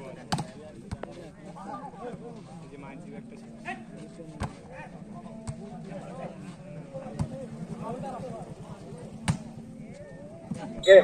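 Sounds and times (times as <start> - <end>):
volleyball being struck: 9.2 - 9.6.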